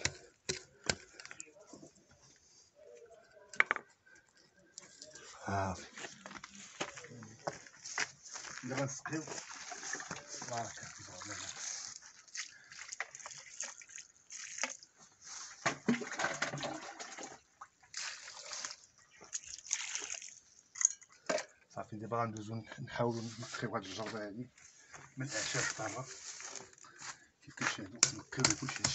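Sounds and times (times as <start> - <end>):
water sloshing in plastic bucket: 9.1 - 20.8.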